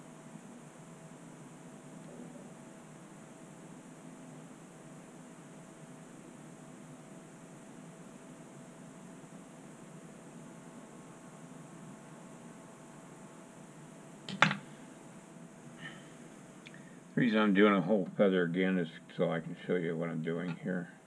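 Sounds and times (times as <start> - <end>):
faint steady hum: 0.0 - 21.0
room tone hiss: 0.0 - 21.0.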